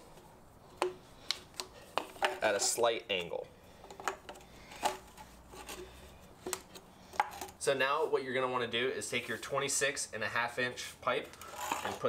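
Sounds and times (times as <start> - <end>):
plastic pipe fittings clicking: 0.8 - 5.8.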